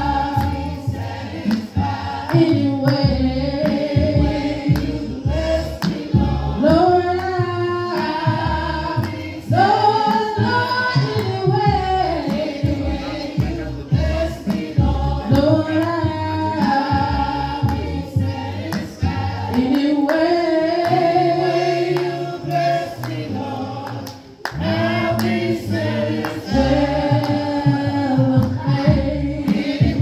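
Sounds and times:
group singing a hymn: 0.0 - 30.0.

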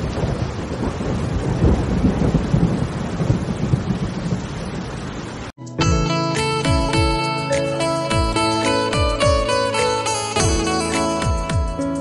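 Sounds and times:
deep rolling thunder: 0.0 - 5.4
heavy rain pouring: 0.0 - 5.6.

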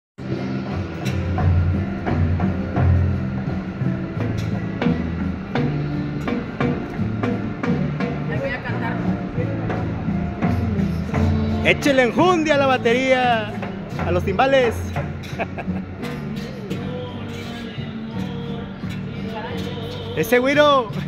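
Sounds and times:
sharp percussion strikes: 0.2 - 19.0
latin dance music: 0.2 - 21.0.

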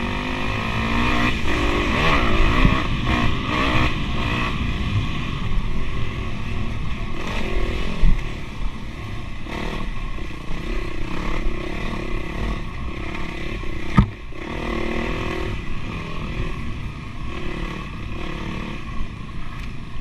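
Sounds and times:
dirt bike engine revving: 0.0 - 19.1
sharp knock: 13.9 - 14.2.

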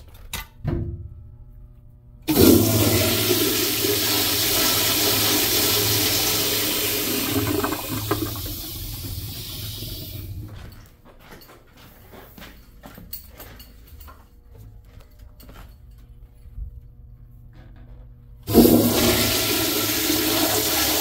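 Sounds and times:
toilet flushing water rush: 2.3 - 10.6, 18.5 - 21.0.

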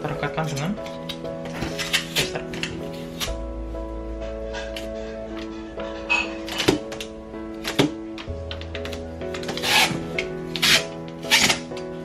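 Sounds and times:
background music: 0.0 - 12.0
packing tape tearing off roll: 0.8 - 3.4, 6.5 - 11.9.

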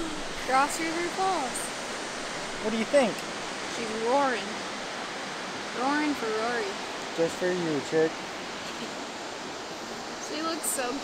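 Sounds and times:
waterfall roaring: 0.0 - 11.0.

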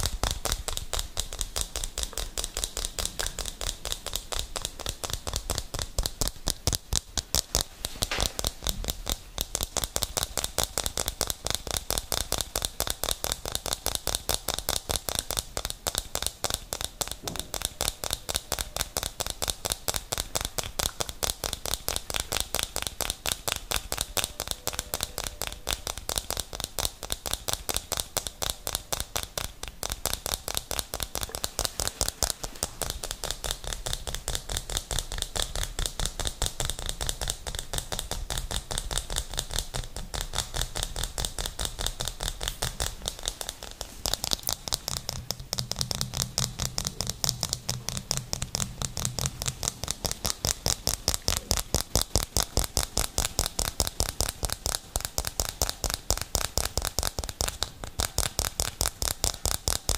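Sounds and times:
fast tapping on plastic lid: 0.0 - 59.9.

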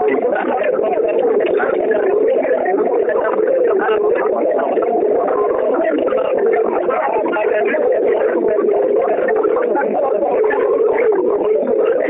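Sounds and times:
overlapping voices over phone line: 0.0 - 12.0.

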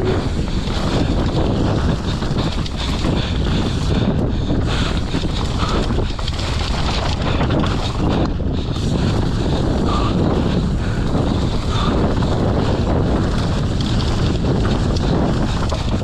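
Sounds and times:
bike frame rattling: 0.0 - 16.0
bike tyres rumbling: 0.0 - 16.0
wind rushing over microphone: 0.0 - 16.0.

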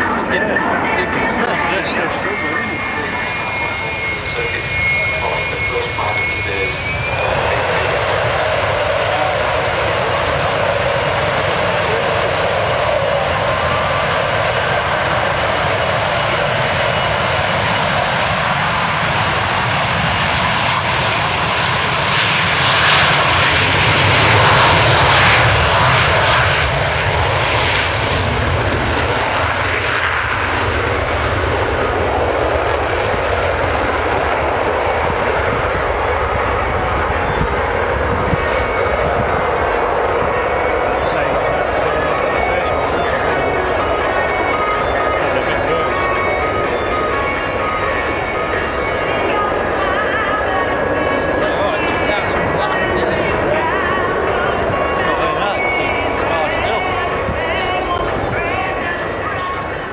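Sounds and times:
high whine: 0.0 - 59.9
jet engines roaring: 0.0 - 59.9.

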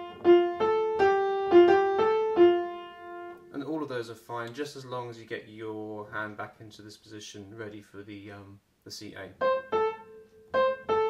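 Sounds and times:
upright piano melody: 0.0 - 3.5, 9.4 - 11.0
man speaking: 3.5 - 9.4.

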